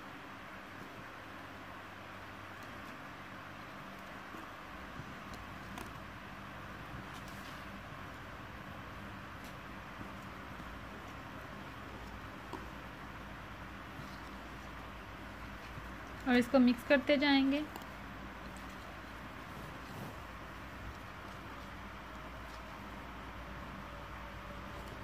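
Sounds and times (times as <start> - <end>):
steady background hiss and hum: 0.0 - 25.0.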